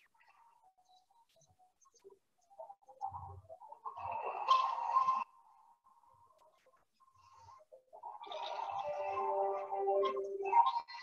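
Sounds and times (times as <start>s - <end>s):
thin video soundtrack: 0.0s - 11.0s
music: 8.2s - 11.0s.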